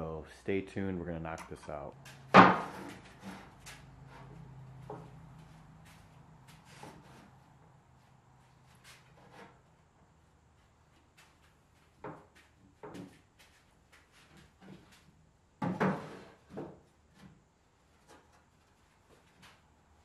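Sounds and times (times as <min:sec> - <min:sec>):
boards knocking and tapping: 0:02.1 - 0:03.8, 0:15.6 - 0:17.3
wooden board clacking down: 0:02.3 - 0:03.0.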